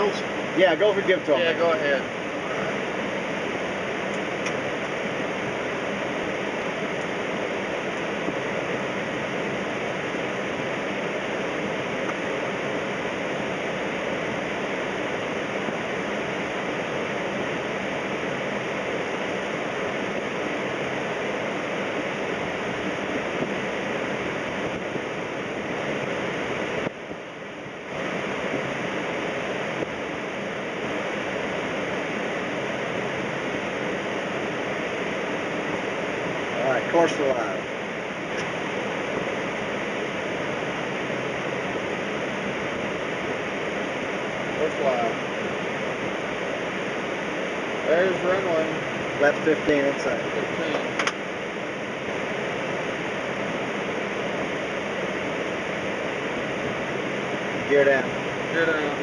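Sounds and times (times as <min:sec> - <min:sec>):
aircraft engine noise: 0:00.0 - 0:59.0.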